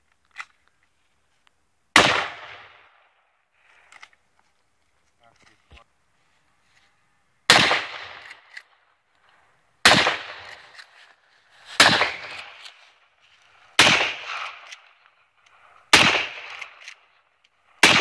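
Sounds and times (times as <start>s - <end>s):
rifle shots with echo: 2.0s - 3.2s, 7.5s - 8.7s, 9.8s - 10.9s, 11.8s - 13.0s, 13.8s - 15.1s, 15.9s - 17.2s, 17.8s - 18.0s.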